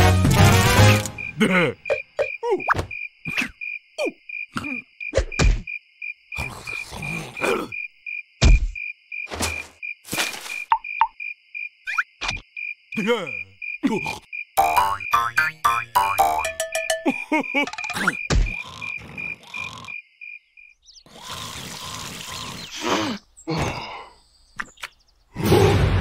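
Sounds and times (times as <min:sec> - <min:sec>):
cartoon soundtrack music: 0:00.0 - 0:01.5, 0:14.6 - 0:18.1
insects or frogs chirping: 0:01.1 - 0:25.4
comic knocks and thuds: 0:05.2 - 0:05.7, 0:08.4 - 0:09.7, 0:17.7 - 0:18.7.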